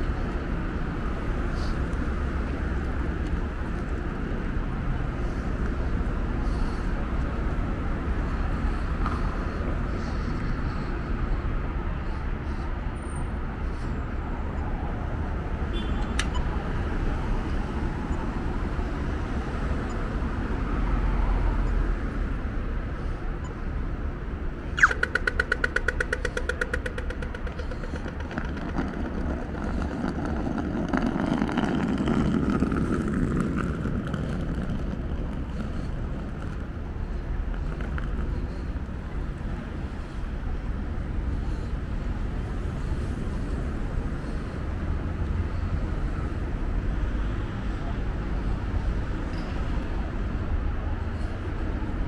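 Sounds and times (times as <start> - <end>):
city street traffic: 0.0 - 52.0
sharp electronic beep: 24.8 - 25.7
rapid crossing signal ticking: 24.8 - 30.2.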